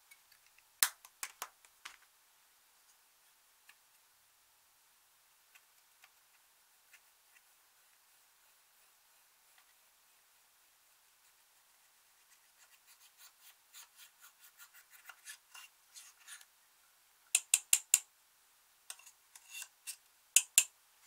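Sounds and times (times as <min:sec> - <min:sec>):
scissor tips scraping powder: 0:18.9 - 0:20.0.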